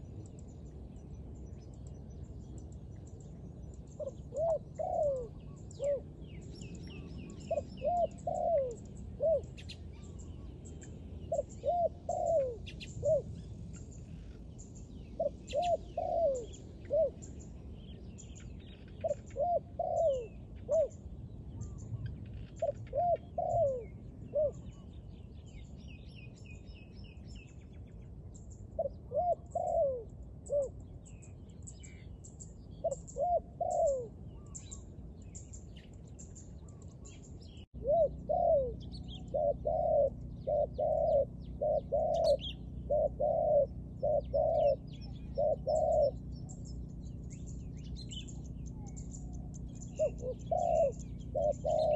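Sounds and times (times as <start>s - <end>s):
small birds chirping: 0.0s - 51.9s
dove cooing: 3.9s - 25.0s, 28.7s - 31.2s, 32.7s - 34.8s, 36.6s - 51.9s.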